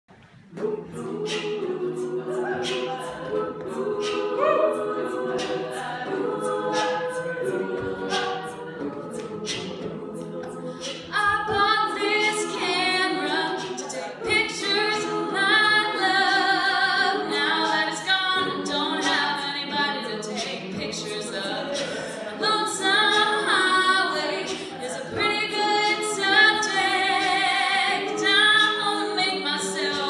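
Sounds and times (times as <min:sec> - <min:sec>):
vocal percussion beat: 0:00.1 - 0:30.0
women's a cappella backing chords: 0:00.2 - 0:30.0.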